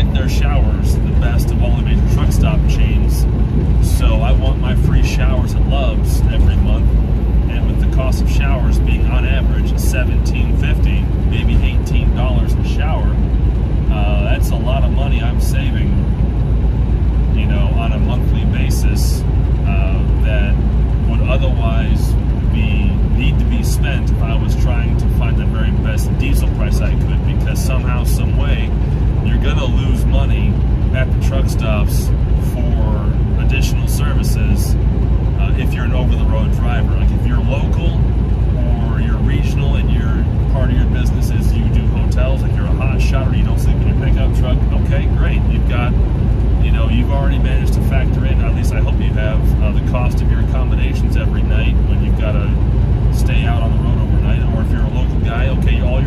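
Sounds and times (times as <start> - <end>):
man talking: 0.0 - 13.3, 13.9 - 16.1, 17.2 - 34.8, 35.4 - 56.0
road noise: 0.0 - 56.0
truck engine drone: 0.0 - 56.0.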